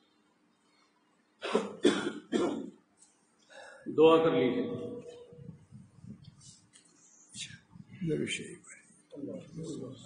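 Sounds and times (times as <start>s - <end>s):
person coughing: 1.4s - 2.7s.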